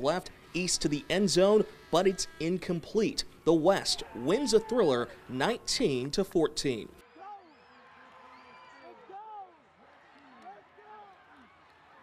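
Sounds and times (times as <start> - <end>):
overlapping voices calling out: 0.0 - 6.0.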